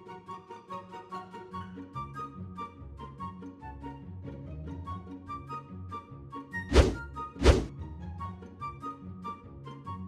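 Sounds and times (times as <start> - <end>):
light instrumental music: 0.0 - 10.0.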